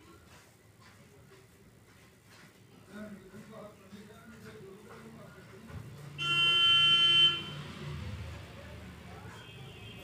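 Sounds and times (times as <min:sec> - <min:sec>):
vehicle horn honk: 0:06.2 - 0:07.7, 0:09.4 - 0:10.0.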